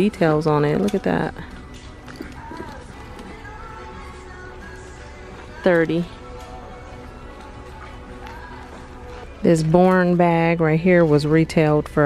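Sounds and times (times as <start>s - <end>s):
faint background music: 0.0s - 12.0s
handbag clicks: 0.8s - 3.5s.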